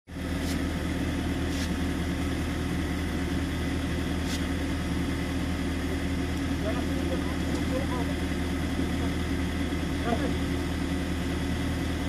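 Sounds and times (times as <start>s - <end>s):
engine idling: 0.1s - 12.0s.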